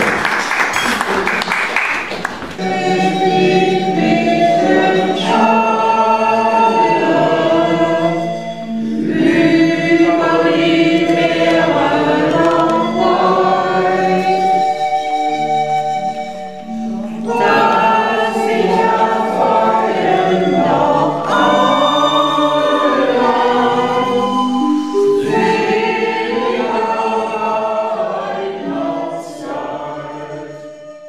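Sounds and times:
choir singing: 0:02.5 - 0:31.0.

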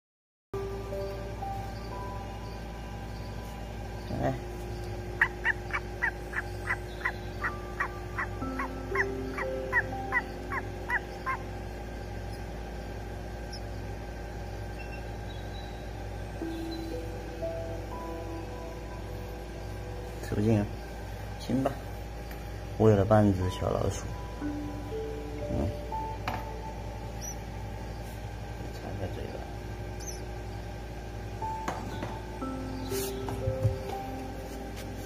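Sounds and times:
owlets peeping: 0:00.6 - 0:34.1
soft background music: 0:00.6 - 0:35.0.

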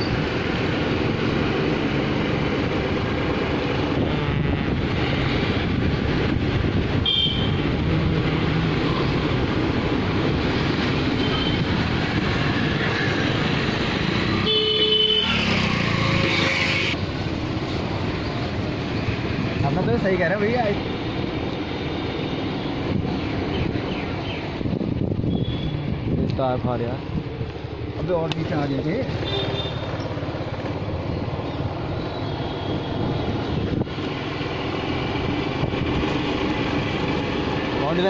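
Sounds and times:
street traffic: 0:00.0 - 0:38.0
vehicle horns honking: 0:07.0 - 0:07.7, 0:14.4 - 0:15.6, 0:29.2 - 0:29.9.

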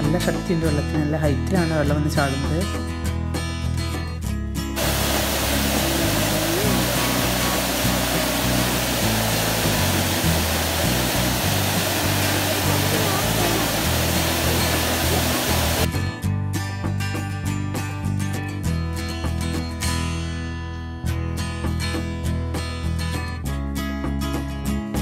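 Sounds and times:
background music with bass line: 0:00.0 - 0:25.0
waterfall rushing: 0:04.8 - 0:15.9.

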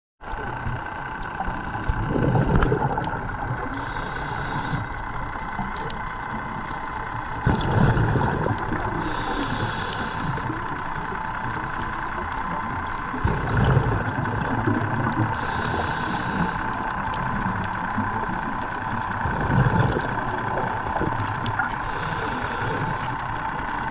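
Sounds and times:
underwater breathing through regulator: 0:02.0 - 0:05.3, 0:07.4 - 0:11.1, 0:13.2 - 0:17.6, 0:21.6 - 0:23.4.

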